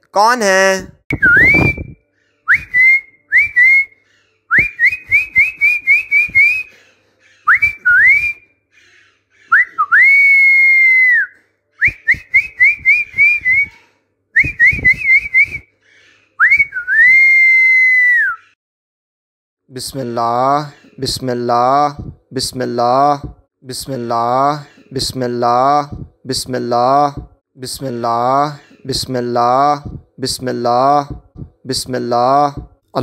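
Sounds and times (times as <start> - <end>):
high upward-swooping whistles: 1.1 - 3.9, 9.5 - 13.8, 16.4 - 18.6.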